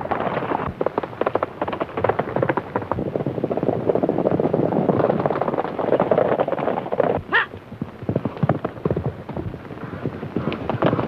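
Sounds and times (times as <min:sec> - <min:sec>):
horses galloping: 0:00.0 - 0:11.0.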